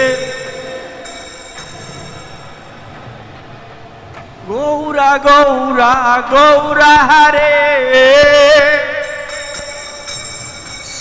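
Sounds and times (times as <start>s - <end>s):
faint high ringing: 0.0s - 3.4s, 8.9s - 11.0s.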